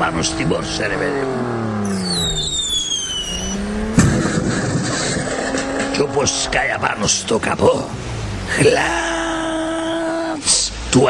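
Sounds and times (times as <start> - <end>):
racing car engine: 0.0 - 11.0
tyres screeching: 1.7 - 10.4
sharp bang: 1.9 - 6.2.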